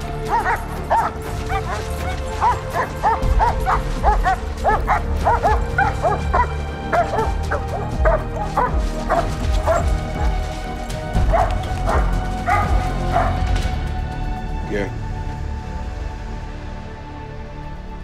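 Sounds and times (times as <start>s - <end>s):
dramatic background music: 0.0s - 18.0s
dog barking and yipping: 0.2s - 10.5s, 11.1s - 13.6s.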